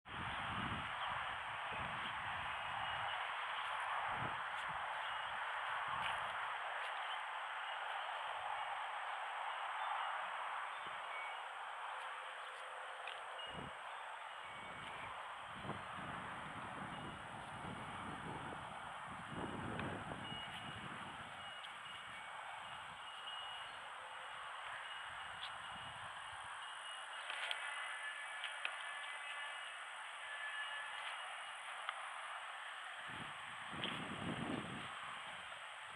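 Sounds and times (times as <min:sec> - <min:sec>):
wind rumbling on microphone: 0:00.1 - 0:11.0, 0:13.0 - 0:23.1, 0:32.9 - 0:35.9.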